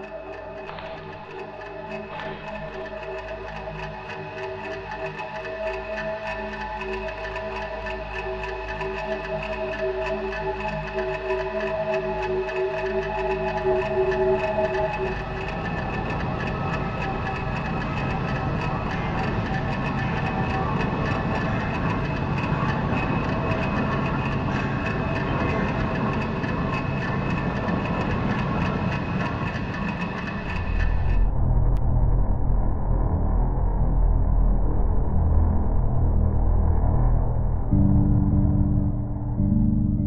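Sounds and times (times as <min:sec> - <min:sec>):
deep low drone: 0:00.0 - 0:40.0
rattling rumbling noise texture: 0:00.0 - 0:40.0.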